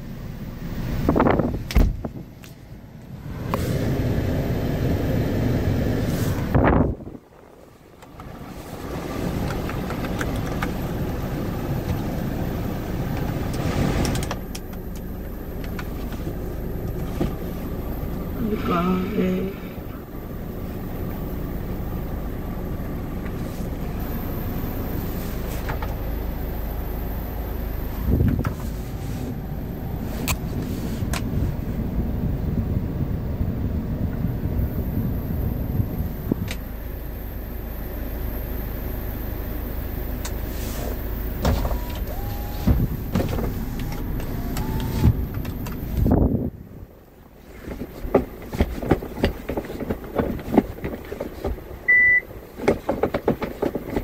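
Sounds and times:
truck engine idling: 0.0s - 47.5s
clicks and knocks from controls: 9.4s - 10.9s, 13.0s - 17.4s, 25.5s - 26.0s, 41.4s - 46.2s, 47.6s - 54.0s.

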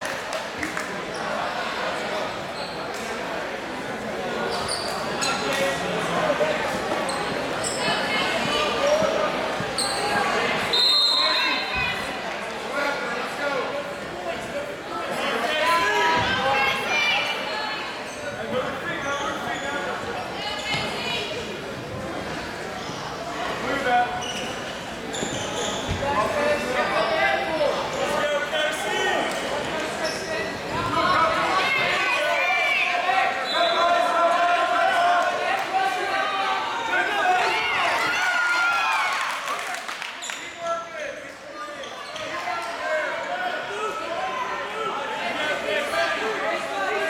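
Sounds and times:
crowd chattering in echoing gym: 0.0s - 47.0s
spectators' voices: 0.0s - 47.0s
shoes squeaking on a mat: 4.5s - 5.6s, 24.1s - 26.4s.

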